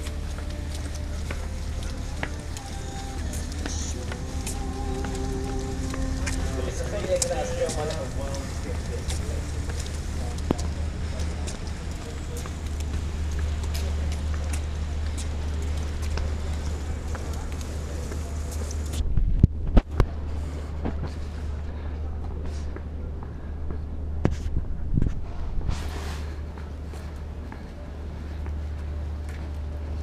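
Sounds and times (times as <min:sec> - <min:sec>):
wind on microphone: 0:18.8 - 0:21.4, 0:24.0 - 0:26.4.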